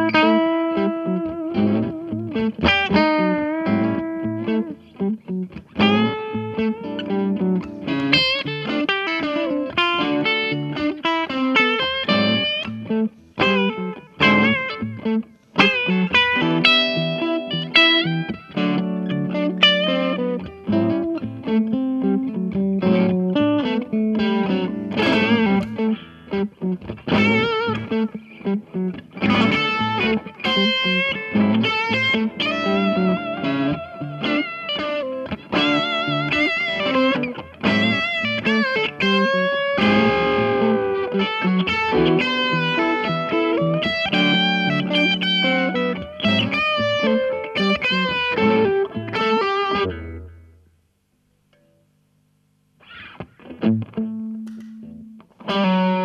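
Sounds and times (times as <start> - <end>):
electric guitar lead lines with vibrato: 0.0 - 50.7, 52.8 - 56.0
sustained guitar chords: 0.0 - 56.0.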